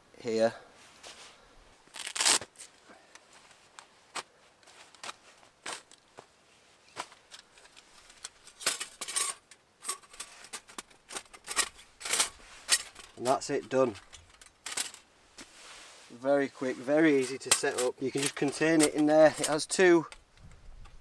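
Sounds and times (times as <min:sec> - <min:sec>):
fabric pouch rustling: 0:00.9 - 0:08.5
metal panels clicking and clinking: 0:07.0 - 0:15.1, 0:17.0 - 0:20.3.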